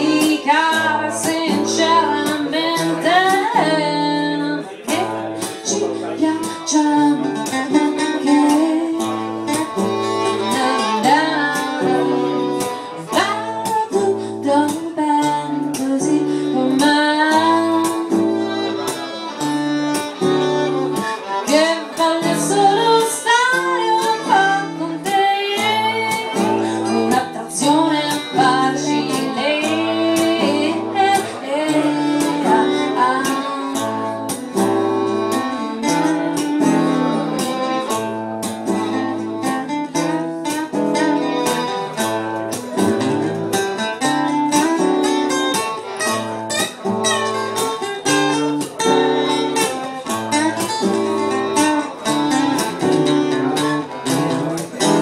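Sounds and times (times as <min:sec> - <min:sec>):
woman singing: 0:00.0 - 0:18.6, 0:21.5 - 0:38.0
acoustic guitar strumming: 0:00.0 - 0:55.0.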